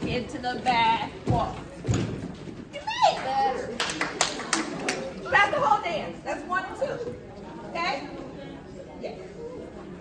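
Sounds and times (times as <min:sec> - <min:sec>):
hand claps: 0:03.8 - 0:05.0.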